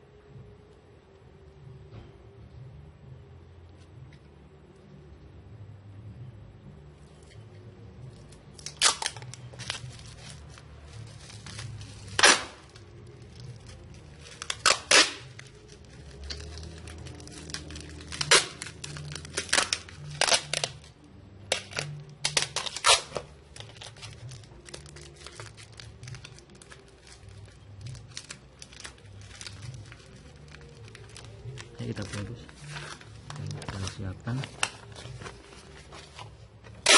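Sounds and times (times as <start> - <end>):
packing material crinkling: 8.0 - 36.9.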